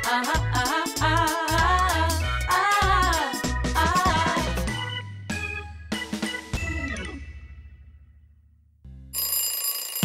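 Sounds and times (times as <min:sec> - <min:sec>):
alarm clock bell ringing: 0:09.2 - 0:10.0.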